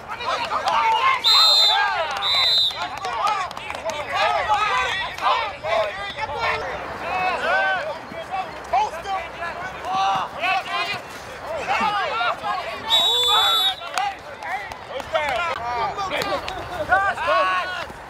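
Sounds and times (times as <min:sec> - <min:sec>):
men shouting and calling out: 0:00.0 - 0:18.0
referee's whistle: 0:01.0 - 0:02.9, 0:12.8 - 0:14.0.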